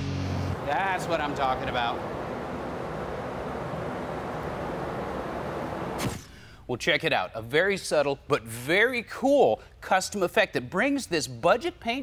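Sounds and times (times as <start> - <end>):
ventilation air rush: 0.0 - 6.8.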